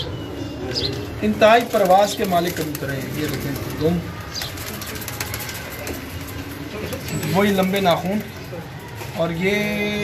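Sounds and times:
pigeon wings fluttering: 0:01.4 - 0:08.4.

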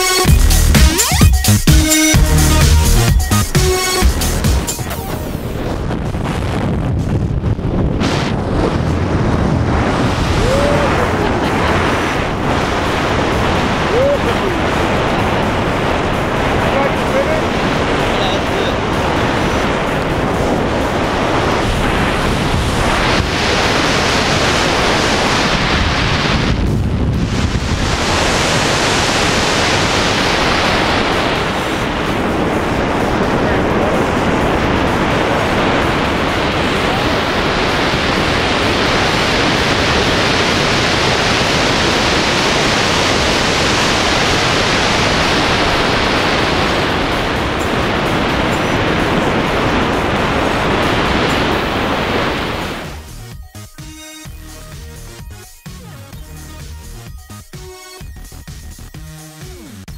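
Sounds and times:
wind rushing over microphone: 0:02.2 - 0:53.3.

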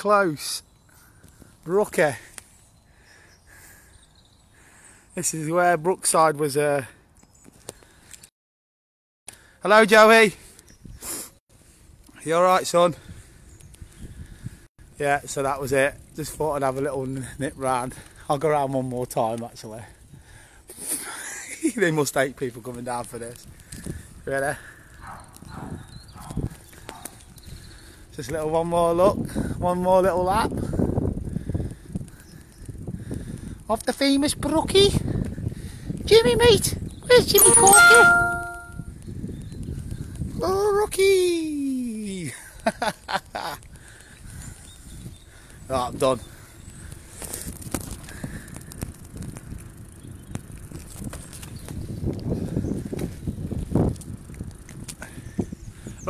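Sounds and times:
bicycle tyres rumbling on road: 0:00.8 - 0:05.0, 0:11.6 - 0:20.7, 0:21.4 - 0:37.0, 0:38.9 - 0:40.8, 0:42.2 - 0:56.0
bicycle clicks: 0:22.6 - 0:28.4, 0:46.2 - 0:56.0.

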